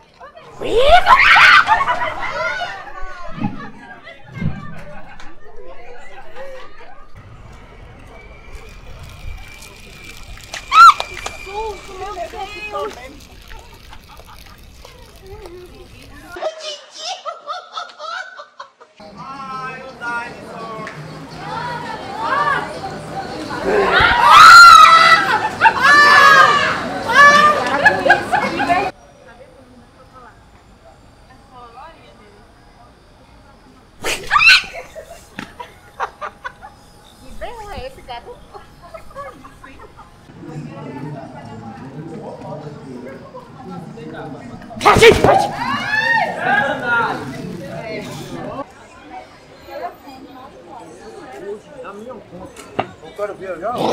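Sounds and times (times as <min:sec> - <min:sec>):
chatter of passers-by: 0:00.0 - 0:16.7, 0:19.0 - 0:53.9
woman screaming: 0:00.6 - 0:01.8, 0:10.7 - 0:11.1, 0:24.2 - 0:27.6, 0:34.2 - 0:34.8.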